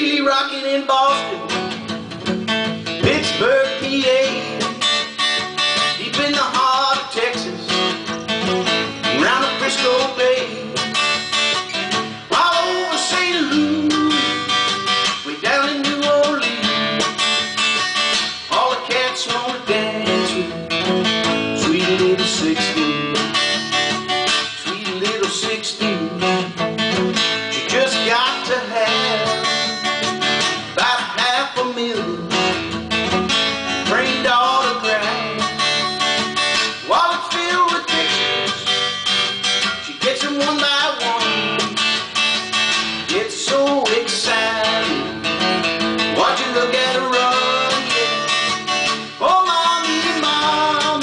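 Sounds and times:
acoustic guitar strummed and picked: 0.0 - 51.0.

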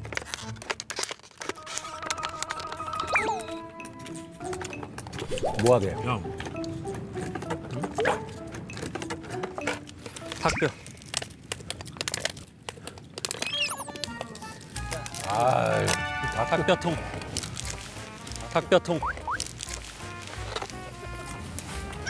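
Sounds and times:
light background music: 0.0 - 10.9, 13.7 - 22.0
voice: 5.5 - 6.2, 10.4 - 10.8, 15.2 - 17.1, 18.5 - 19.1.

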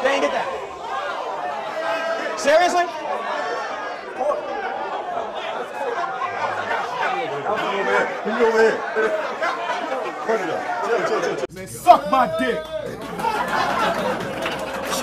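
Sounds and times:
crowd of men talking: 0.0 - 15.0.

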